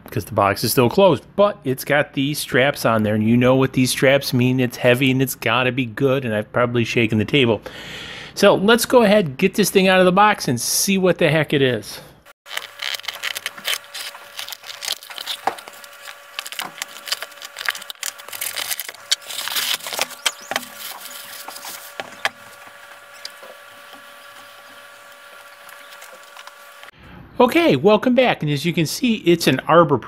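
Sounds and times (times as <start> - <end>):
faint steady hum: 12.0 - 27.9
cardboard tearing and rustling: 12.4 - 26.9.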